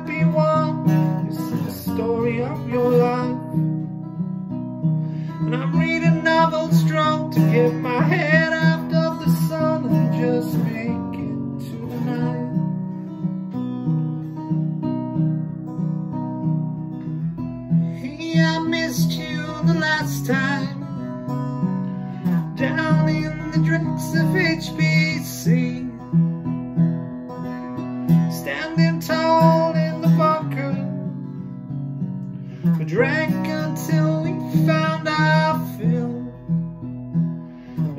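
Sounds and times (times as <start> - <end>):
man singing: 0.0 - 3.7, 5.2 - 12.8, 17.8 - 21.3, 22.2 - 26.4, 28.1 - 31.1, 32.6 - 36.7
acoustic guitar strumming: 0.0 - 37.9.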